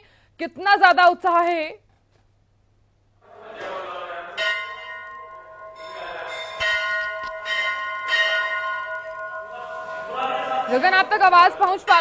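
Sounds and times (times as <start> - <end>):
crowd noise: 3.2 - 4.4, 9.5 - 12.0
temple bells ringing: 3.6 - 12.0.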